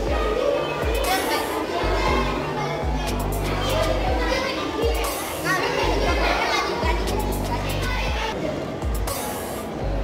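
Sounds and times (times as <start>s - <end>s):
background music with deep bass: 0.0s - 10.0s
children chattering: 0.0s - 10.0s.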